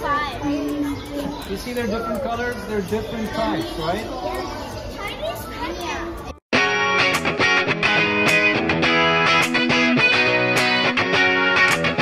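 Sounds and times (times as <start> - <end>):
children talking: 0.0 - 6.4
strummed guitar music: 6.5 - 12.0.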